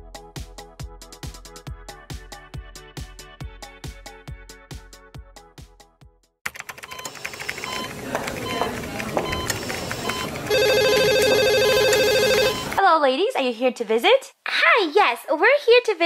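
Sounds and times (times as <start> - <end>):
telephone ringing: 6.7 - 12.8
clicks: 6.9 - 12.8.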